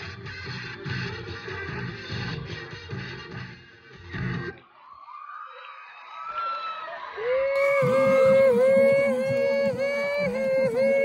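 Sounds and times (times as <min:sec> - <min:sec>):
dance music: 0:07.6 - 0:11.0
distant cries: 0:07.6 - 0:11.0
faint crowd noise: 0:07.6 - 0:11.0
loud high held tone: 0:07.6 - 0:11.0.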